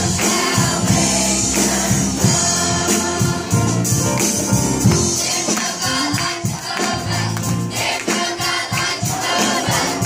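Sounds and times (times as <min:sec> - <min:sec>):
children's choir singing: 0:00.0 - 0:04.0, 0:04.9 - 0:10.0
instrumental accompaniment: 0:00.0 - 0:10.0.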